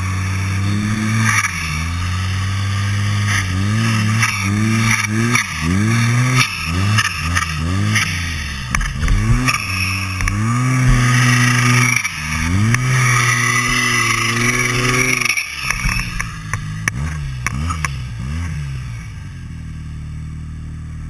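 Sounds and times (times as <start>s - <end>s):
snowmobile engine revving: 0.0s - 21.0s.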